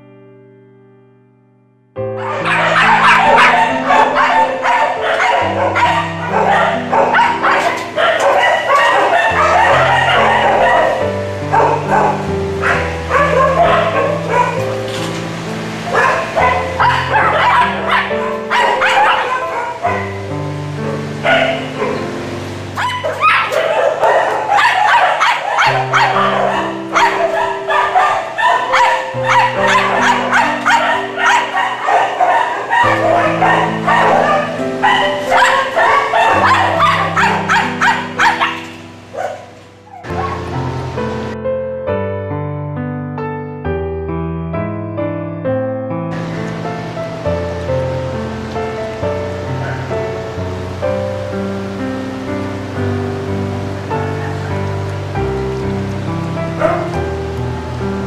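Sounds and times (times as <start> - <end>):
slow piano-like music: 0.0 - 58.0
dogs barking and yipping: 2.2 - 41.4, 46.2 - 51.2, 53.7 - 57.4.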